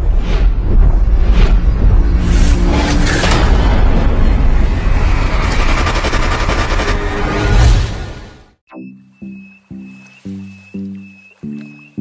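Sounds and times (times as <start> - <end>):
dense rumbling noise: 0.0 - 8.1.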